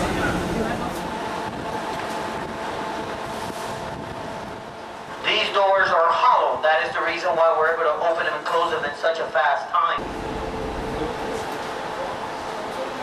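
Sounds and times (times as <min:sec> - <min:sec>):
machinery hum with steady tones: 0:00.0 - 0:13.0.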